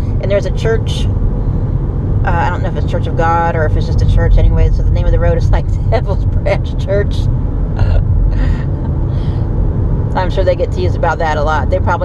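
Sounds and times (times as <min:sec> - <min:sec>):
road and engine rumble: 0:00.0 - 0:12.0
soft breathy sounds: 0:08.3 - 0:09.6.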